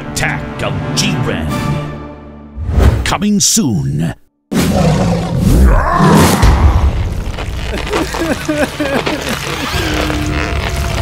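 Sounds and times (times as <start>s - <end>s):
music: 0.0s - 3.2s, 8.2s - 11.0s.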